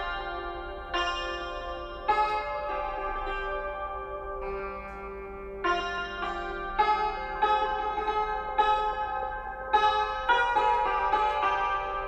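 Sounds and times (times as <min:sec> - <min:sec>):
string instrument slow melody: 0:00.0 - 0:12.0.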